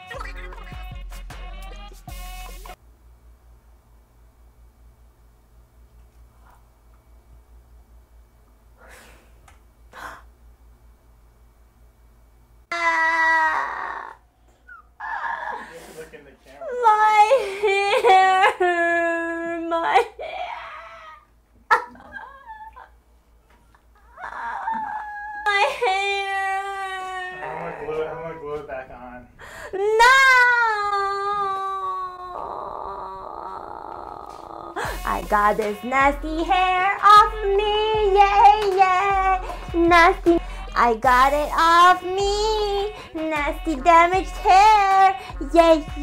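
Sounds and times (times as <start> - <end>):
woman wailing and crying: 12.7 - 15.8, 16.7 - 23.0, 24.0 - 28.2, 29.6 - 46.0
woman sobbing: 12.7 - 15.9, 16.6 - 23.0, 23.9 - 28.0, 29.4 - 35.6
breathy moan: 12.7 - 16.0, 16.6 - 21.3, 23.9 - 28.4, 29.4 - 35.1.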